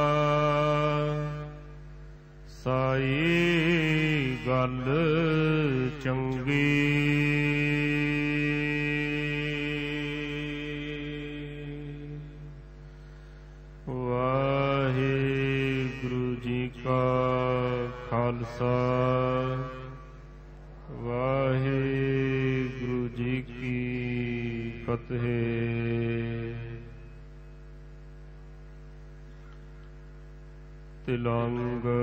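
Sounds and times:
devotional hymn singing: 0.0s - 1.7s, 2.5s - 12.6s, 13.9s - 20.1s, 20.9s - 27.0s.

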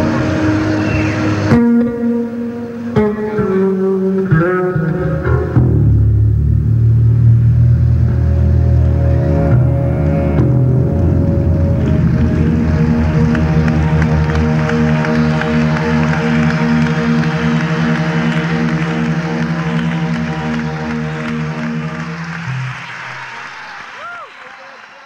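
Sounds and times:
audience applause: 0.0s - 1.5s, 10.9s - 25.0s
electric bass sustained chord: 0.0s - 22.9s.

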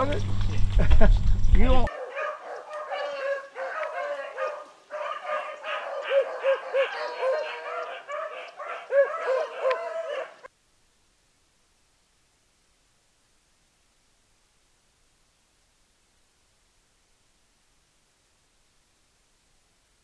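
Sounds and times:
hounds baying: 1.8s - 10.5s.

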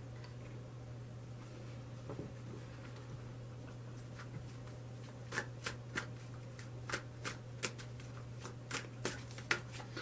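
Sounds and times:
cards being shuffled: 4.2s - 10.0s.

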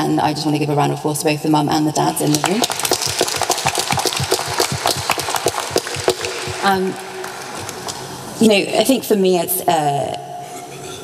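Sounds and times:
audience applauding: 2.2s - 8.2s.

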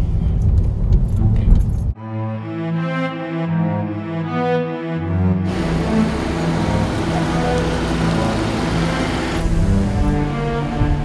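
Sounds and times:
low string music: 2.0s - 11.0s
car tyres on cobblestones: 5.5s - 11.0s.

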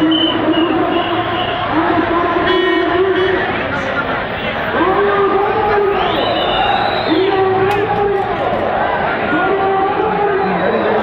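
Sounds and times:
street crowd noise: 0.0s - 11.0s
long drawn-out shouting: 0.7s - 11.0s.

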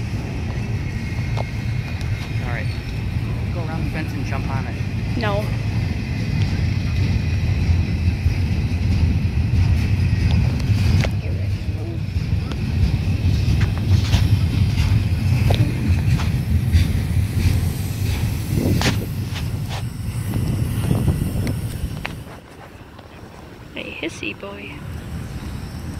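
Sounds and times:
steel wheels rumbling on rail: 0.0s - 25.9s
train clanks and clicks: 0.0s - 25.9s.

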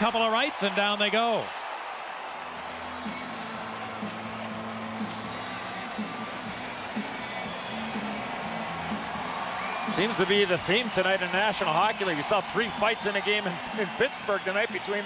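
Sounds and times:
crowd cheering: 0.0s - 15.0s.

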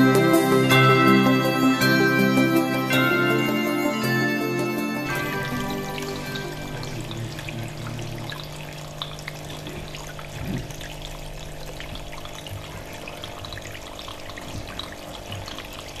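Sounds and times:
background music: 0.0s - 8.2s
water trickling: 2.9s - 16.0s
steady low hum: 5.1s - 12.9s
faint water drips: 5.5s - 16.0s.

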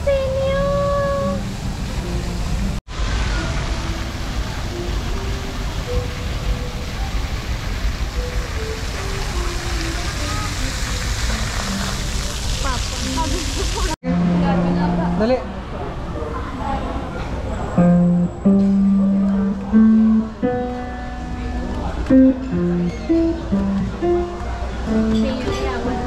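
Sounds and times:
background noise wash: 0.0s - 26.0s
electronic piano notes: 0.0s - 26.0s.

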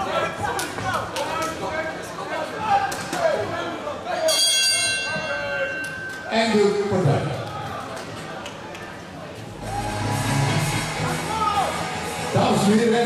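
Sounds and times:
bell ringing tone: 4.3s - 6.3s
people shouting: 9.6s - 12.1s.

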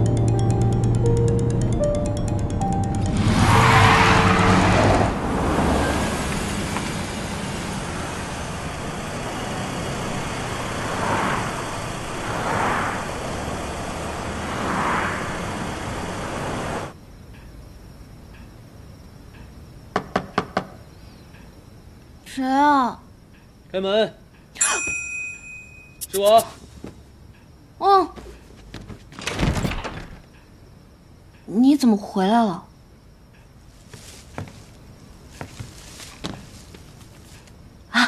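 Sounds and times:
road noise inside car: 0.0s - 17.0s
vehicles passing by: 0.0s - 17.0s
knocking on door: 19.9s - 20.7s.

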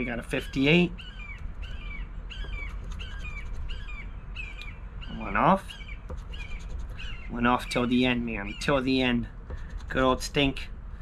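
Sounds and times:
bird squawking: 0.0s - 10.0s.

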